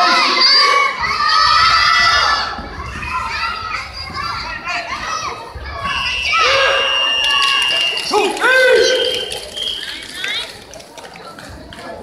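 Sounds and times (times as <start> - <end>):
children shouting in a hall: 0.0 - 9.0.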